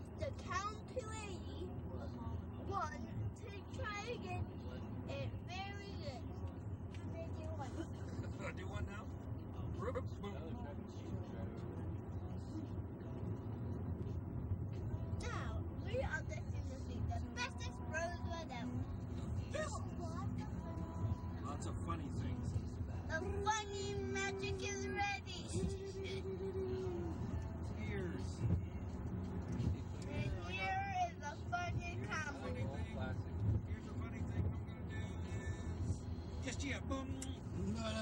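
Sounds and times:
car cabin rumble: 0.0 - 38.0
voices: 0.0 - 38.0.

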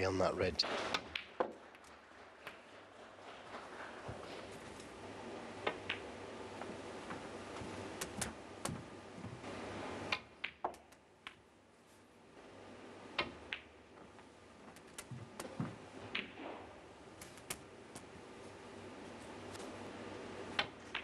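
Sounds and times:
soft room noise: 0.0 - 21.0.

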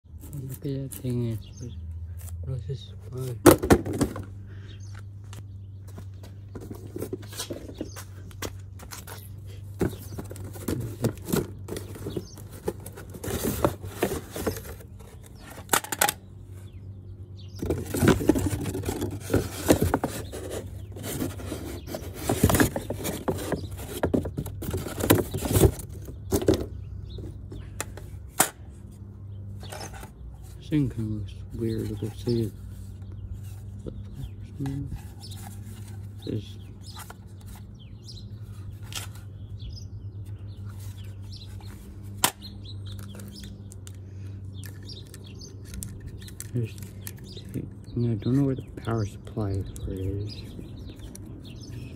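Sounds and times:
steady low hum: 0.1 - 51.9
cardboard and plastic being handled: 6.5 - 16.2, 17.6 - 28.0, 31.5 - 33.8, 34.5 - 37.8, 38.4 - 39.3.

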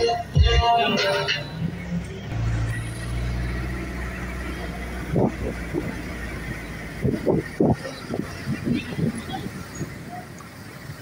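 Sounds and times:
van engine rumbling past: 1.4 - 11.0.

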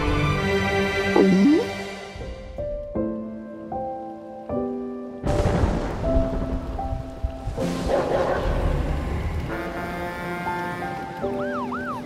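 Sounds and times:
heavy rain: 3.6 - 12.0
thunder rumble: 5.2 - 10.0.

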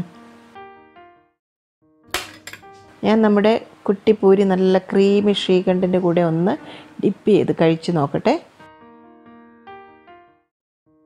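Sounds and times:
spoon clinking glass bowls: 2.2 - 2.8
woman speaking: 3.0 - 8.5.

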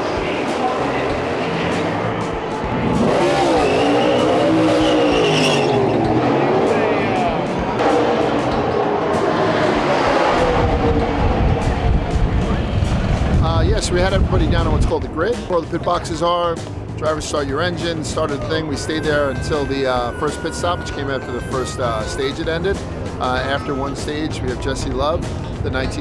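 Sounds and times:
race cars passing: 0.0 - 26.0
heavy low rumble: 6.4 - 15.7.

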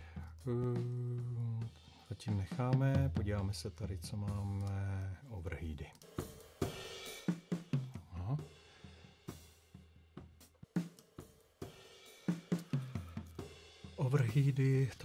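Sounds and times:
drum kit playing: 0.0 - 15.0.

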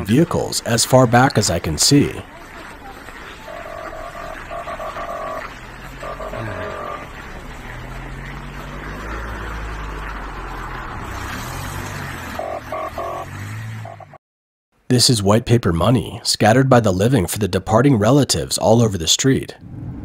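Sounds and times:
vehicle engines running: 0.0 - 14.2.

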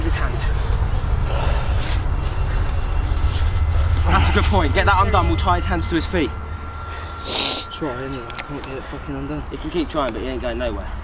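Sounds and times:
rustling on leaves: 0.0 - 5.0
low microphone rumble: 0.0 - 11.0.

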